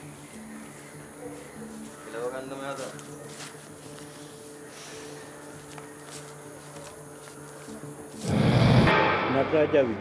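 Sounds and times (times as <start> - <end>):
insect buzzing: 7.1 - 8.9.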